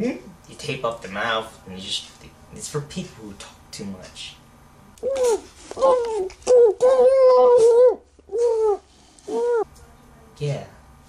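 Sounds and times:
person's muffled mm cries: 5.0 - 9.7.

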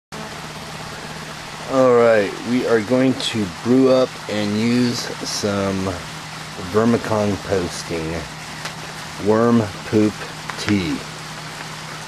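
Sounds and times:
man talking: 1.6 - 8.3, 9.2 - 11.1.

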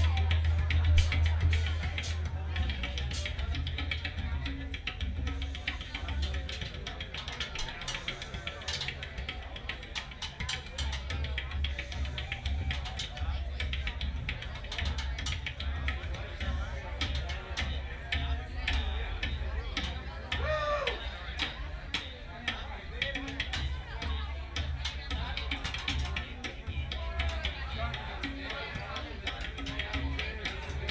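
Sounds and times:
rapid drum strikes: 0.0 - 30.9.

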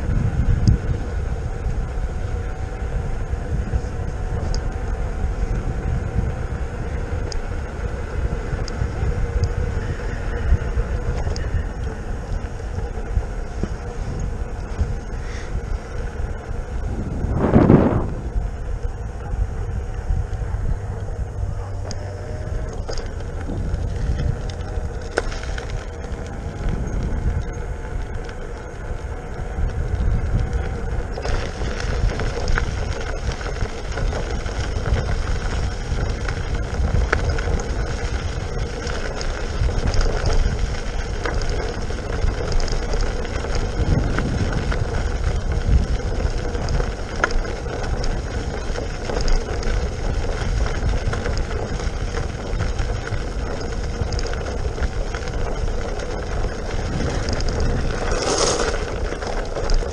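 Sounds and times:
tyre rolling over asphalt and gravel: 0.0 - 59.9
wind rumbling on microphone: 0.0 - 59.9.

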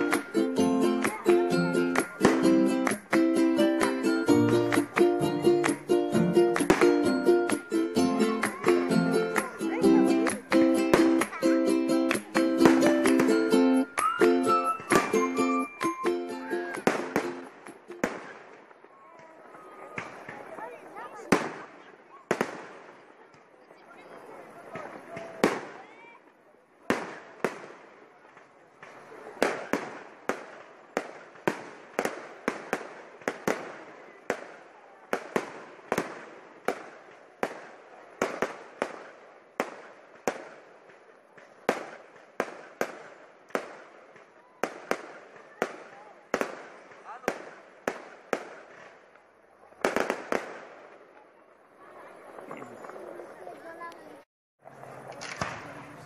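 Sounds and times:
fireworks bangs: 0.0 - 26.0, 26.8 - 53.8, 54.6 - 56.0.

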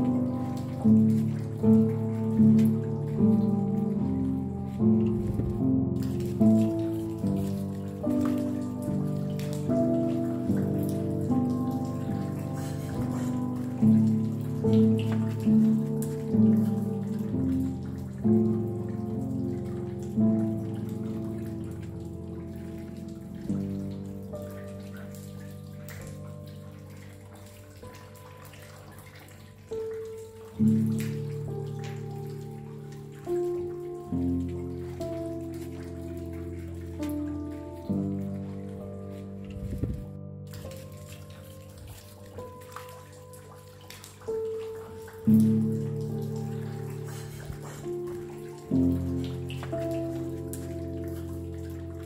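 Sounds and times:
slow calm piano: 0.0 - 52.0.

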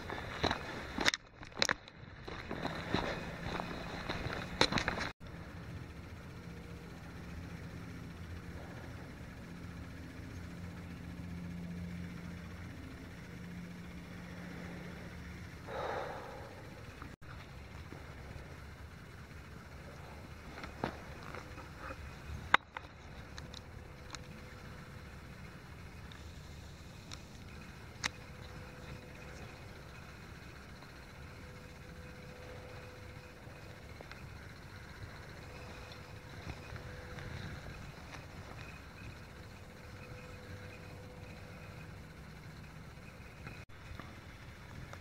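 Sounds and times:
low handling rumble: 1.9 - 45.0.

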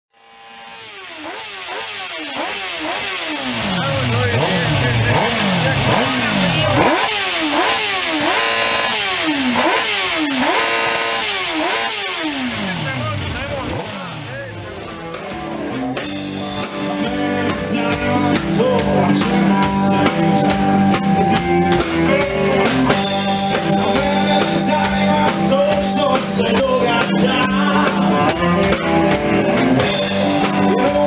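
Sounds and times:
motorcycle engine revving: 0.1 - 31.0.

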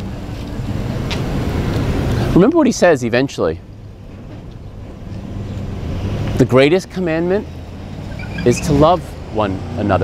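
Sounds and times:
low engine hum: 3.6 - 10.0.

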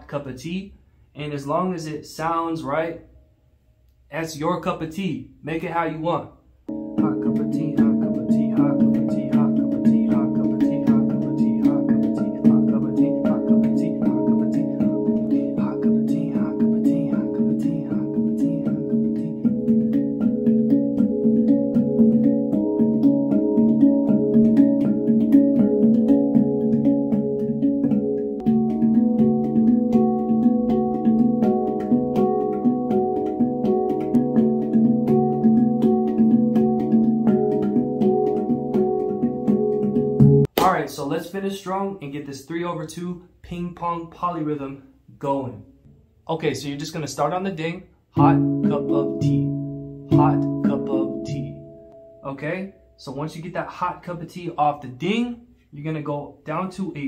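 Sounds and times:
handpan playing: 6.7 - 40.5, 48.2 - 52.2.

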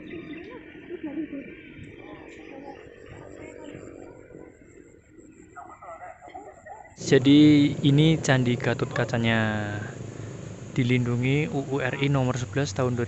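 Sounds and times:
distant people talking: 0.0 - 13.0
low background noise: 0.0 - 13.0.

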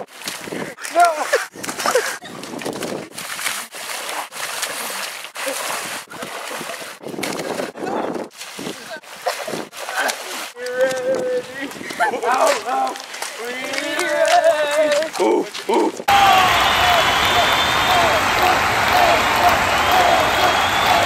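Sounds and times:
mud splashing and sloshing: 0.0 - 16.1
people shouting: 16.1 - 21.0.

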